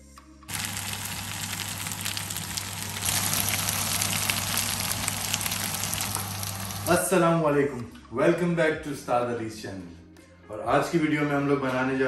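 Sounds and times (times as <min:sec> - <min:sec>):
food sizzling in a frying pan: 0:00.5 - 0:07.0
low steady hum: 0:00.5 - 0:07.0.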